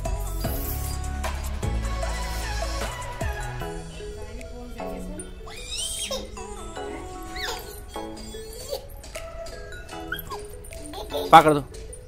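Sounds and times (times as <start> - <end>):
background music with held notes: 0.0 - 12.0
high-pitched squeals or whimpers: 0.3 - 1.3, 5.1 - 12.0.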